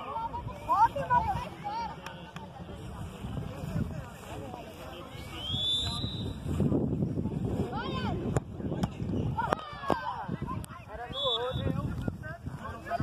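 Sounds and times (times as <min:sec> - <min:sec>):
wind on microphone: 0:02.6 - 0:13.0.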